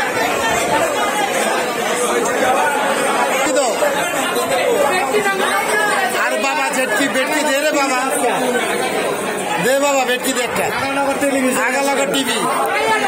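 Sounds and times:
overlapping chatter of voices: 0.0s - 13.0s.

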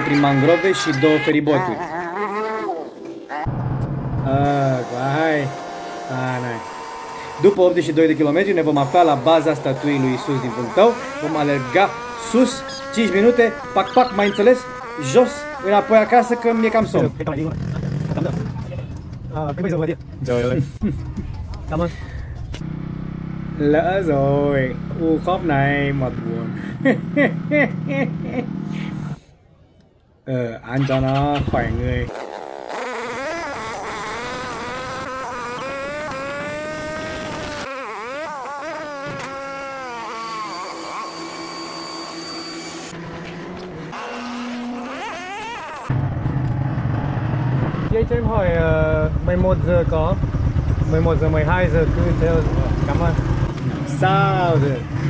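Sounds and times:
man speaking: 0.0s - 1.9s, 7.4s - 17.3s
motorcycle engine running: 3.4s - 28.8s, 31.3s - 40.2s, 45.9s - 55.0s.

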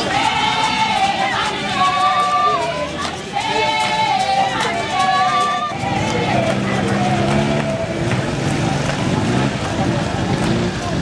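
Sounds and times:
small motorcycle engines: 0.0s - 11.0s.

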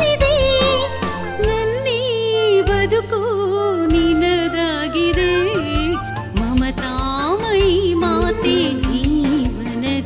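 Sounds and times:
instrumental accompaniment with bass: 0.0s - 10.0s
woman singing devotional song: 0.0s - 10.0s.

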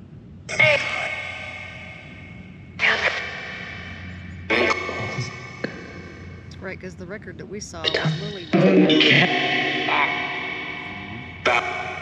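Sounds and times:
echoed voice-like bursts: 0.5s - 1.3s, 4.5s - 5.3s, 6.6s - 10.3s, 10.9s - 12.0s.

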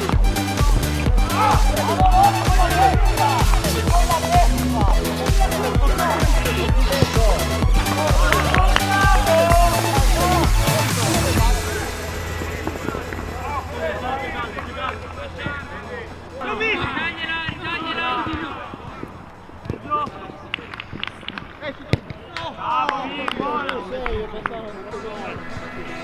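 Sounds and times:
players shouting: 0.0s - 21.0s, 21.7s - 24.0s
background music: 0.0s - 21.2s, 22.5s - 26.0s
ball kicks: 6.8s - 8.9s.

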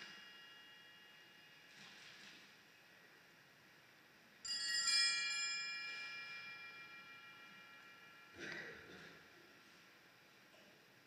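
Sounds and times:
altar bells ringing: 4.4s - 8.5s.

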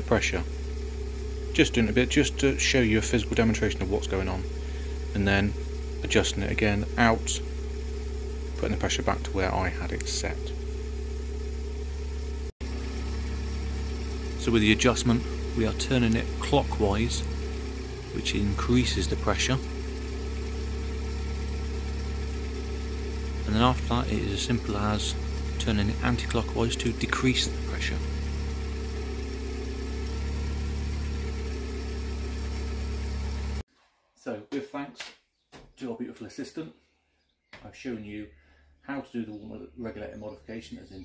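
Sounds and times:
engine idling: 0.0s - 33.6s.

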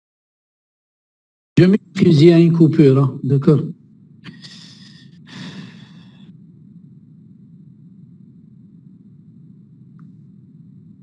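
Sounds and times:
low background hiss: 1.6s - 11.0s
breath into microphone: 4.3s - 6.3s.

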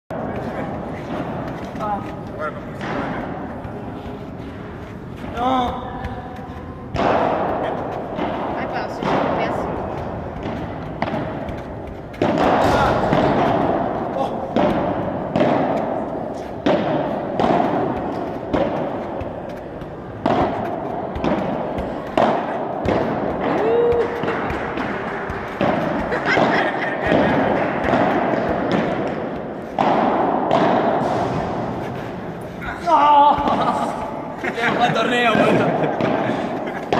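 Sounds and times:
balls struck in echoing hall: 0.1s - 36.9s.

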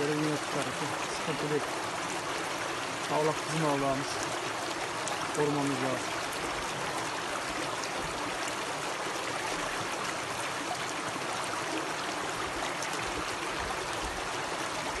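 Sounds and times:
stream water running over rocks: 0.0s - 15.0s.

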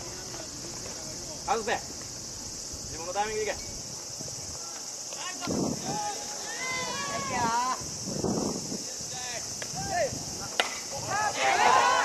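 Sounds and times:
loud shouting voices: 5.2s - 7.9s, 10.9s - 12.0s.

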